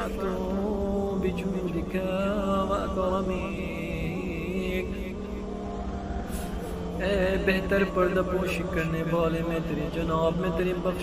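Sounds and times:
low background drone: 0.0 - 11.0.

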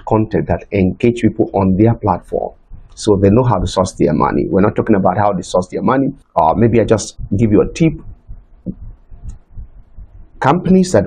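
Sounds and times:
man's voice: 0.0 - 8.1, 10.4 - 11.0
faint low thumps: 1.2 - 11.0.

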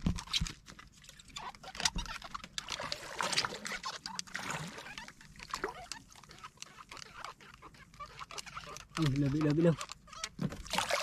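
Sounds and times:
water splashing against boat: 2.4 - 6.7, 10.4 - 11.0.

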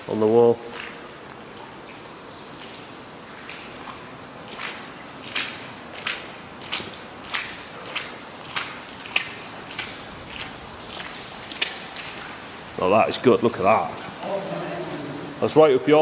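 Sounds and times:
footsteps on wet gritty concrete: 3.5 - 12.6.

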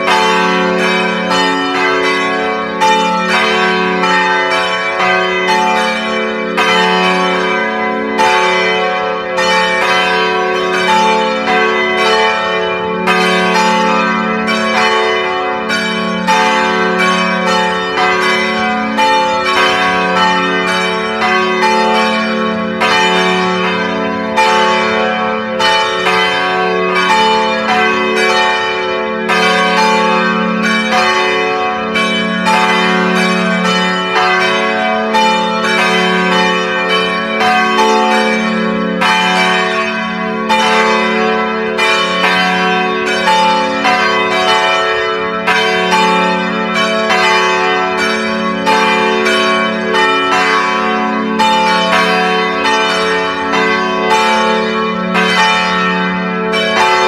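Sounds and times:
church bells pealing: 0.0 - 57.0.

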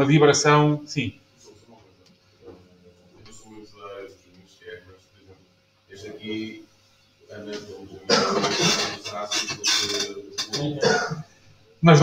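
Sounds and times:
indistinct voices talking: 7.2 - 11.2.

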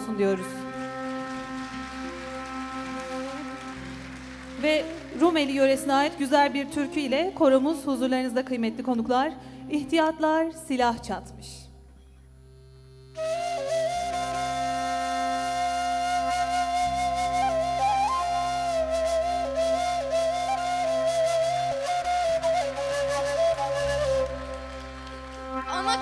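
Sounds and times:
wooden flute melody: 0.0 - 7.7, 13.1 - 26.0.

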